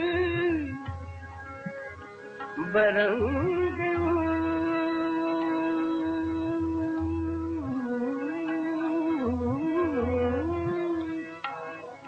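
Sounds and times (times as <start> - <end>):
man singing: 0.0 - 1.0, 2.6 - 11.9.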